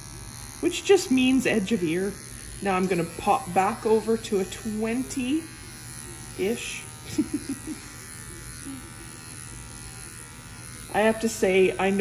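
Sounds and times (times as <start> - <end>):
electric clippers buzzing: 0.0 - 12.0.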